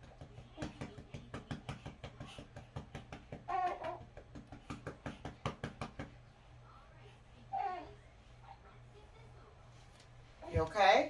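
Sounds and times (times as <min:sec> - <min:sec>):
rapid sharp knocks: 0:00.0 - 0:06.1.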